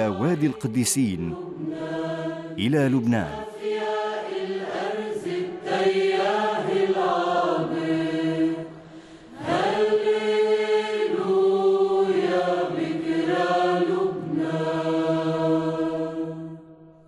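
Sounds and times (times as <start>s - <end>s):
sung vocal chant: 0.0s - 16.8s.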